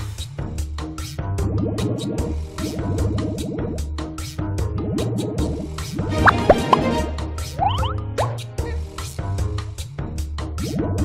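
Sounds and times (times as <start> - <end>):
cartoon bubble-pop bloops: 6.2 - 6.9, 7.6 - 8.4
slot game music with a beat: 6.2 - 8.4.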